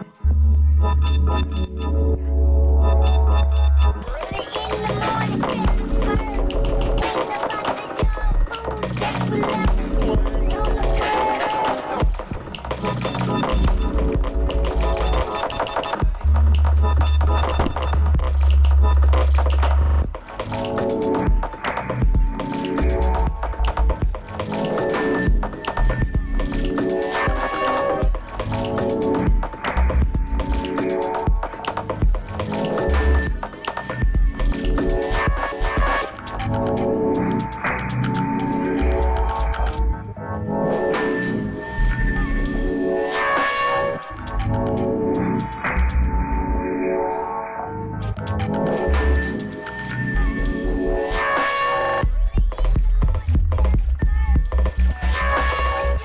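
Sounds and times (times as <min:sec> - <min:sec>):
electronic dance music: 0:03.1 - 0:39.9, 0:43.2 - 0:46.1, 0:48.0 - 0:50.0, 0:51.2 - 0:56.0
glitchy clicks: 0:04.0 - 0:39.9, 0:48.0 - 0:50.0.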